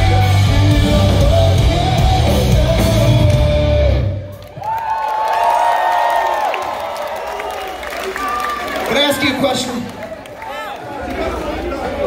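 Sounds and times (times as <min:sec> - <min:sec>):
live rock band playing: 0:00.0 - 0:04.4
crowd cheering and whooping: 0:01.9 - 0:12.0.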